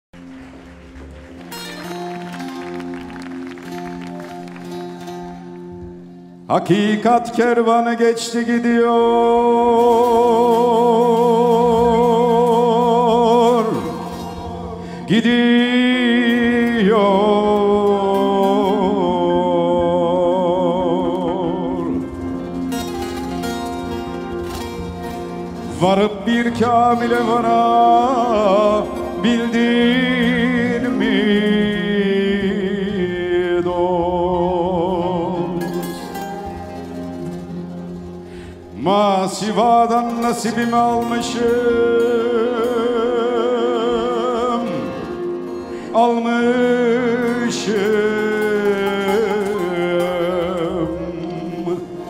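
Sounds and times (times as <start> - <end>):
folk ensemble with plucked strings: 0.1 - 52.0
instrumental music with held notes: 0.2 - 52.0
man singing: 5.0 - 37.4, 38.6 - 52.0.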